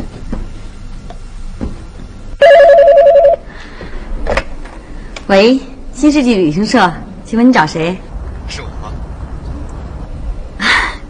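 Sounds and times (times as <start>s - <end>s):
telephone warbling ring: 2.4s - 3.4s.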